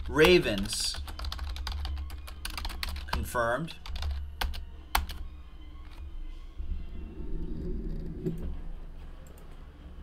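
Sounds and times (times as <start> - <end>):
low steady hum: 4.6 - 10.0.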